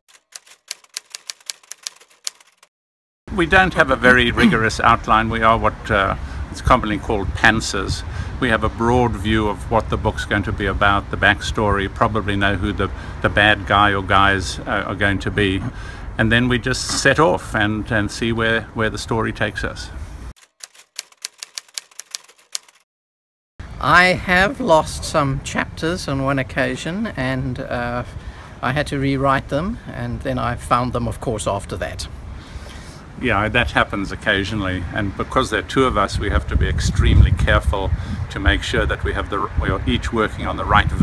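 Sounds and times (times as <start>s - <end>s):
typewriter key clicks: 0.1s - 2.7s, 20.4s - 22.8s.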